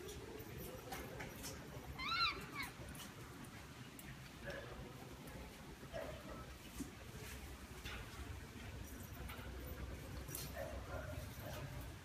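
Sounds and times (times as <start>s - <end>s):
parrot call: 2.0s - 2.8s.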